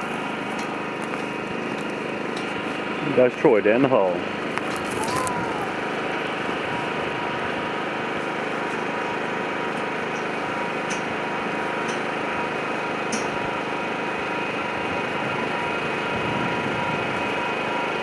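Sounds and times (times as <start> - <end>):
small engine humming: 0.0 - 18.0.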